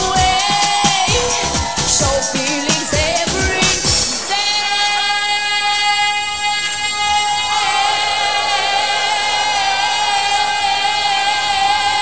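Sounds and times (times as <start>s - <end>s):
backing track: 0.0s - 5.9s
singer holding a high note: 0.0s - 12.0s.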